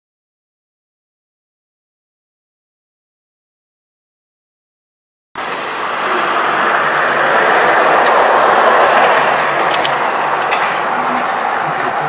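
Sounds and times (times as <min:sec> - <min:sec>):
fountain water splashing: 0:05.4 - 0:12.0.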